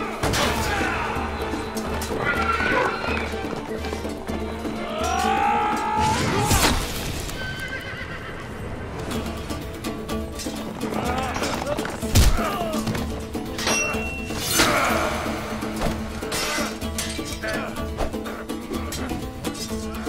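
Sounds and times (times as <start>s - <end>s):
dramatic music with drone: 0.0s - 20.0s
horse whinnying: 2.0s - 3.6s, 7.3s - 8.5s.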